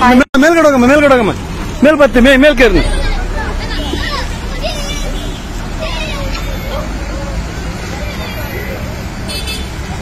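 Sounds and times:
bus engine rumble: 0.0s - 10.0s.

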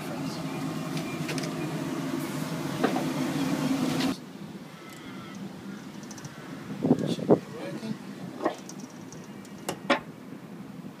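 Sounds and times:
ship machinery humming: 0.0s - 11.0s.

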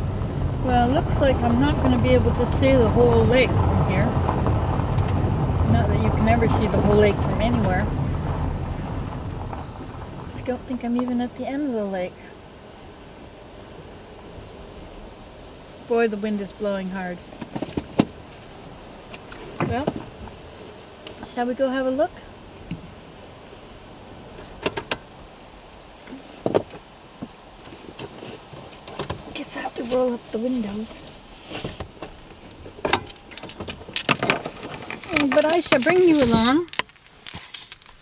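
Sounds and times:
wind buffeting microphone: 0.0s - 37.3s.

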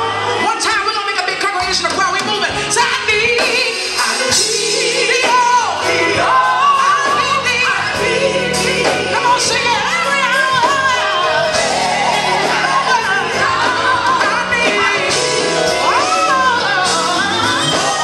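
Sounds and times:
band with bass drums and guitar: 0.0s - 18.0s
woman singing with vibrato: 2.7s - 18.0s
female harmony singers: 2.9s - 18.0s.

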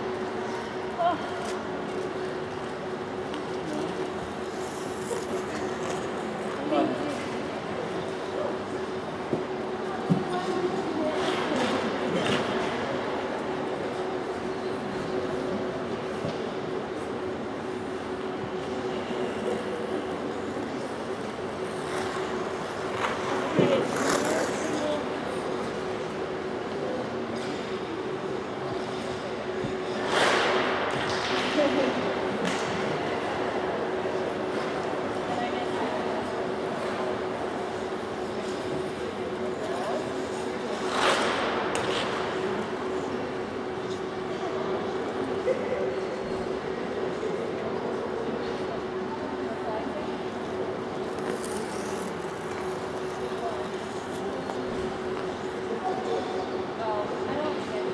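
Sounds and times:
faint indistinct voices: 0.0s - 57.9s.

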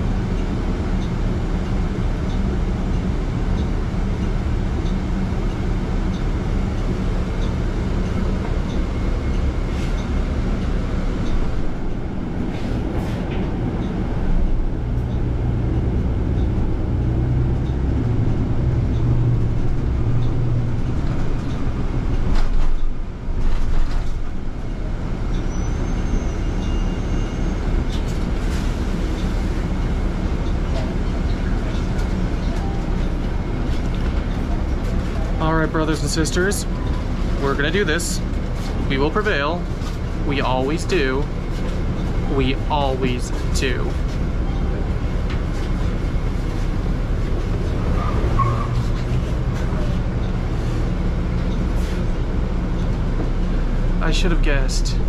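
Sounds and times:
bus drivetrain and road rumble: 0.0s - 55.0s.

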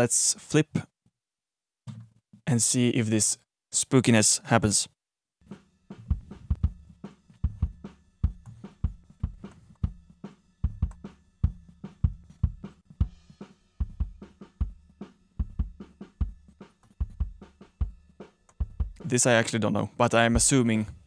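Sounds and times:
drum kit steady beat: 5.4s - 19.5s, 20.3s - 21.0s.

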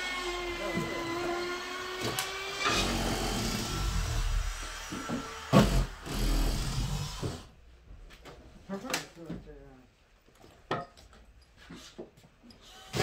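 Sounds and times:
power tools working: 0.0s - 7.5s, 12.6s - 13.0s.

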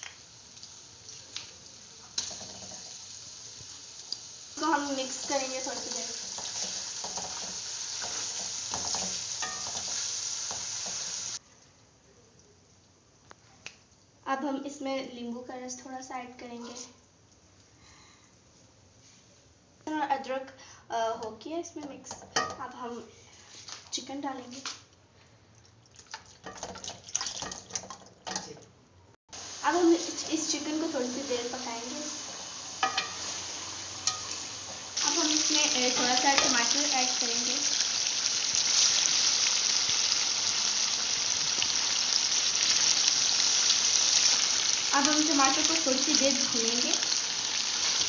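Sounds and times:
onions sizzling in hot oil: 0.0s - 11.4s, 29.3s - 48.0s.

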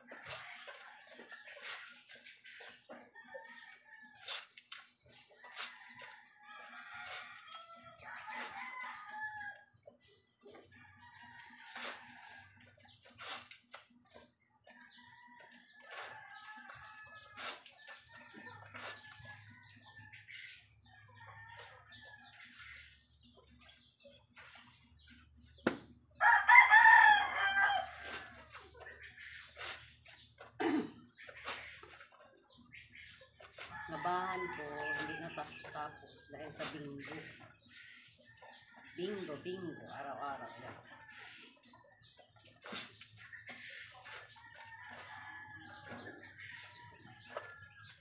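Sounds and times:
chickens clucking: 0.0s - 48.0s
rooster crowing: 26.2s - 28.0s.

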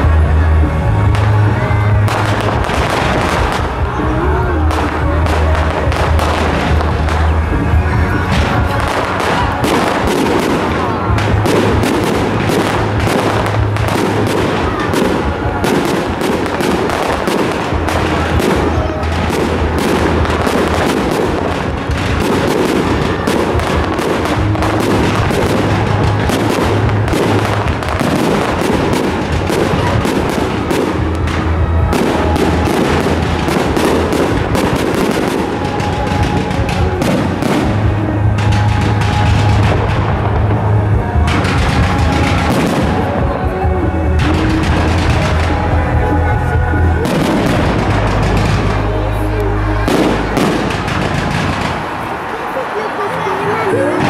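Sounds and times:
fireworks bursting and crackling: 0.0s - 54.0s
music playing: 0.0s - 54.0s.

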